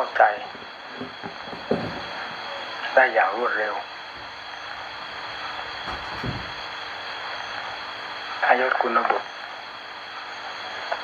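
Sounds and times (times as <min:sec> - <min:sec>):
recording hiss and hum: 0:00.0 - 0:11.0.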